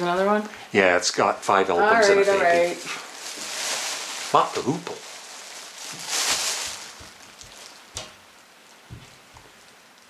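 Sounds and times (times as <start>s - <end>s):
plastic bag rustling: 2.0s - 8.4s.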